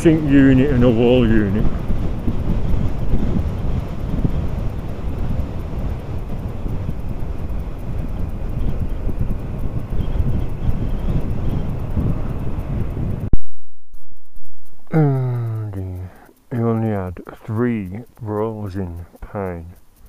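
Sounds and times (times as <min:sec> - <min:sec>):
motorcycle road and engine noise: 0:00.0 - 0:13.3
wind buffeting microphone: 0:00.0 - 0:13.4.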